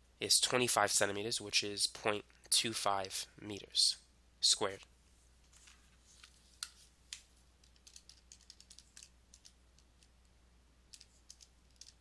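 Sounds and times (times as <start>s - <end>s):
calculator keys clicking: 7.6s - 9.5s, 10.9s - 12.0s.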